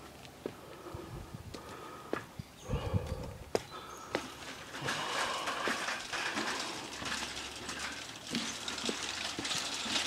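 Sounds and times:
footsteps on wooden boards: 0.0 - 7.3.

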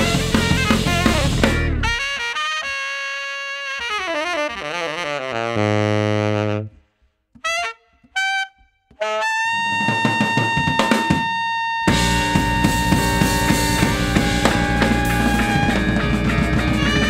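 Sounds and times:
jazz band with drum kit: 0.0 - 2.7, 9.0 - 17.0
saxophone solo: 0.0 - 17.0.

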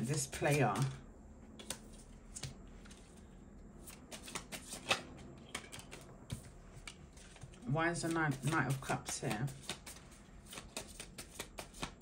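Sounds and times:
cards being shuffled: 0.0 - 1.0, 1.6 - 3.2, 3.8 - 12.0.

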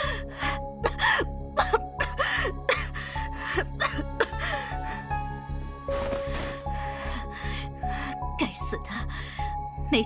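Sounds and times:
woman gasping and groaning: 0.0 - 5.2, 6.3 - 9.6
background music low notes: 0.0 - 10.0.

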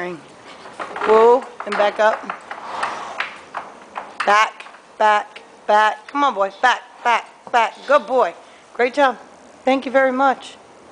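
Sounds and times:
hooves knocking on dirt: 0.4 - 8.1.

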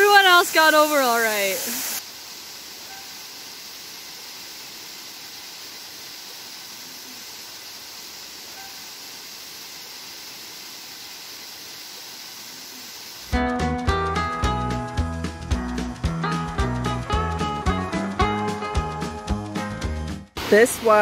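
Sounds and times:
waterfall pouring into pool: 0.0 - 13.4.

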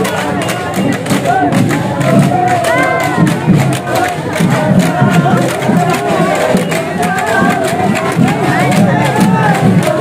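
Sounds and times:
crowd noise: 0.0 - 10.0
drums beating quick rhythm: 0.0 - 10.0.

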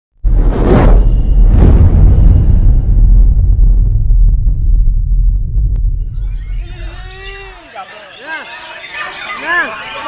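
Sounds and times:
whooshes: 0.2 - 6.8
deep sustained rumble: 0.2 - 7.1.

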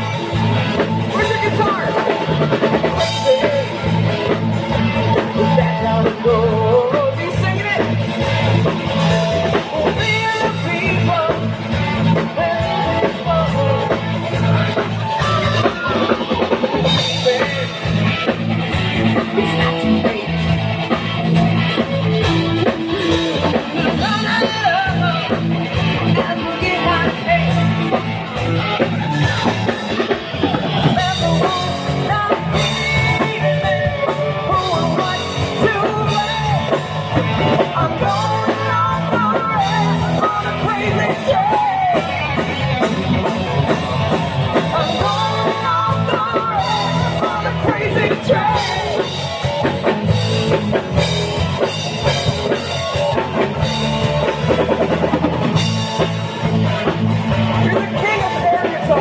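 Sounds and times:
live rock band playing: 0.0 - 59.0
person singing: 0.0 - 59.0.

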